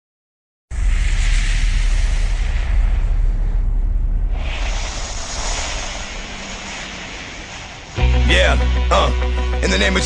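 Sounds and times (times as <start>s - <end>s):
steady rushing noise: 0.7s - 10.0s.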